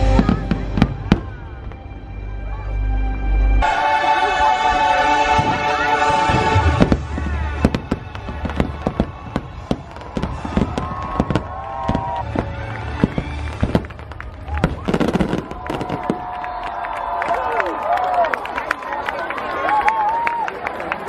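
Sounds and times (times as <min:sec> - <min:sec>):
show music: 0:00.0 - 0:16.0
crowd voices: 0:00.0 - 0:21.0
fireworks cracks and bangs: 0:05.2 - 0:17.4.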